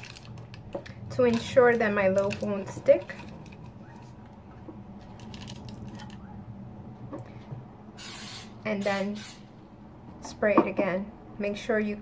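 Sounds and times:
parchment paper crinkling: 0:00.0 - 0:06.4.

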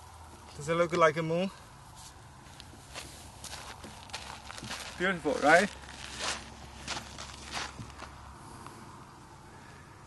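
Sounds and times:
footsteps crunching on gritty ground: 0:02.0 - 0:08.3.

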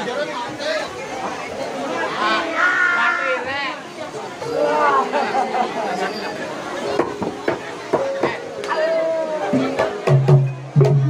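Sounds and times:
crowd chatter: 0:00.0 - 0:11.0
voices talking and calling out: 0:00.0 - 0:11.0.

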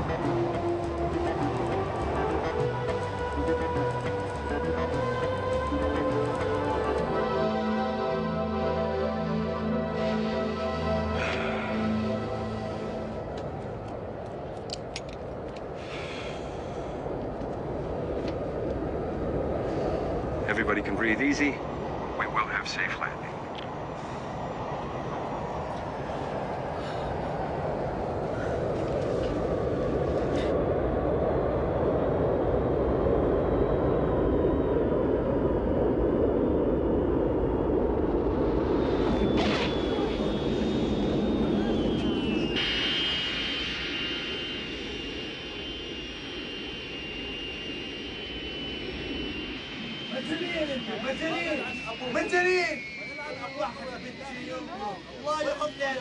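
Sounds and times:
high jet engine whine: 0:00.0 - 0:56.0
jet engine roar: 0:00.0 - 0:56.0.

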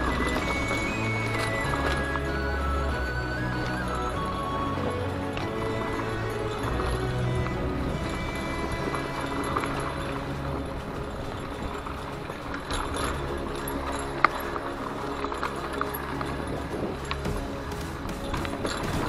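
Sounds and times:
instrumental background music: 0:00.0 - 0:19.0
mountain bike rattling on dirt: 0:00.0 - 0:19.0.

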